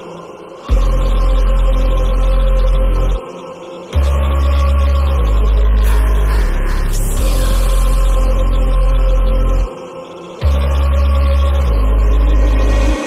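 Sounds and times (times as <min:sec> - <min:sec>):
hip-hop beat with heavy bass: 0:00.0 - 0:13.0
rising swoosh: 0:12.0 - 0:13.0.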